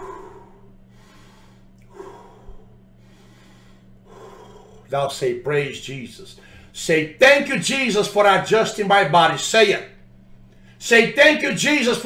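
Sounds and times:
man taking deep breath: 0:00.0 - 0:04.9, 0:06.4 - 0:06.8
faint electrical hum: 0:00.0 - 0:12.0
man's voice: 0:04.9 - 0:09.9, 0:10.8 - 0:12.0.

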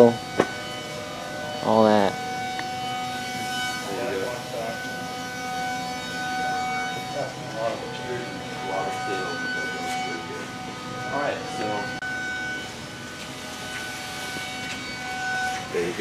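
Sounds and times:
industrial hum: 0:00.0 - 0:16.0.

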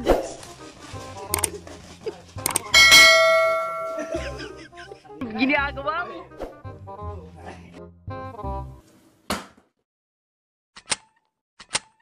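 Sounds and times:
bell ringing: 0:02.7 - 0:04.4.

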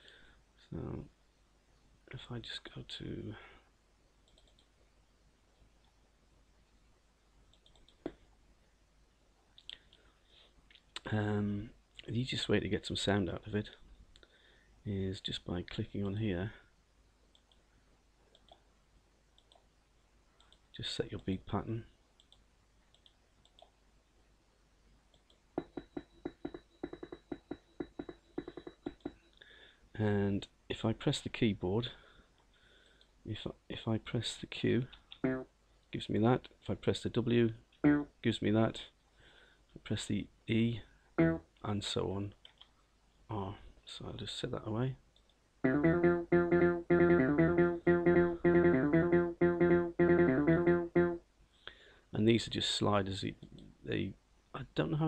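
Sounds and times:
faint clicks: 0:04.2 - 0:04.9, 0:07.5 - 0:08.3, 0:09.5 - 0:10.1, 0:17.3 - 0:18.7, 0:19.3 - 0:19.7, 0:20.3 - 0:20.8, 0:22.2 - 0:23.8, 0:25.1 - 0:29.5, 0:42.3 - 0:42.8, 0:45.1 - 0:45.4
rapid synth bass notes: 0:45.7 - 0:51.2.

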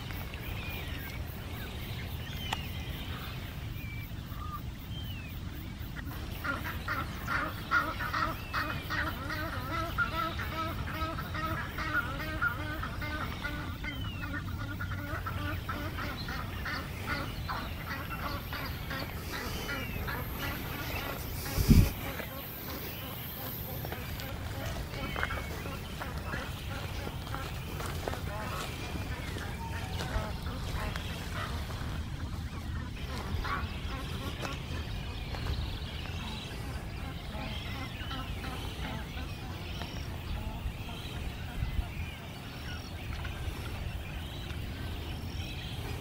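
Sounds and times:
waterfowl calling: 0:00.0 - 0:46.0
low rumble on microphone: 0:15.9 - 0:22.3.

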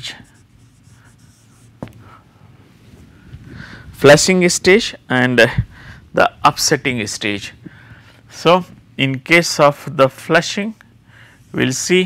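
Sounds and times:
marker pen scratching on whiteboard: 0:00.0 - 0:01.9.

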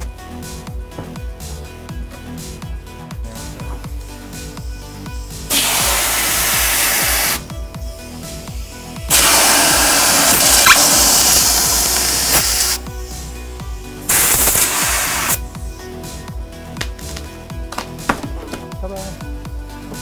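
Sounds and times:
background music: 0:00.0 - 0:20.0
air blow gun hissing: 0:05.2 - 0:07.5, 0:08.3 - 0:15.4.

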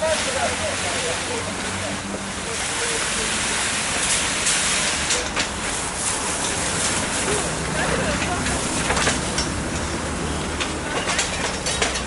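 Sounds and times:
fire rumbling and hissing: 0:00.0 - 0:12.0
fire cracks and snaps: 0:03.9 - 0:09.9.

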